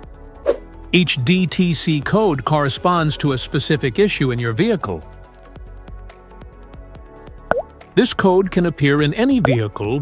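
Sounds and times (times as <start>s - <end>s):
background music with short notes: 7.3s - 10.0s
plop sound with dipping pitch: 7.5s - 7.7s, 9.4s - 9.6s.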